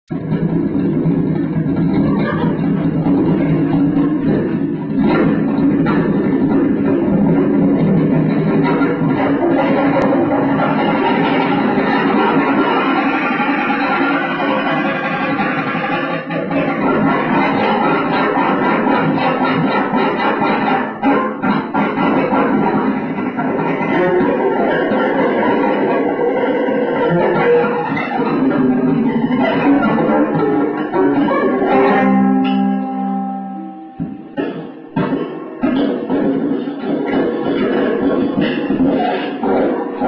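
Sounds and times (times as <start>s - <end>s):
low noise music drone: 0.1s - 40.0s.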